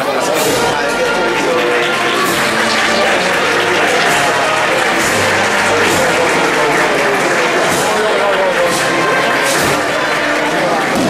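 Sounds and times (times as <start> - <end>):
crowd applauding: 0.0 - 11.0
crowd talking: 0.0 - 11.0
music: 0.0 - 11.0.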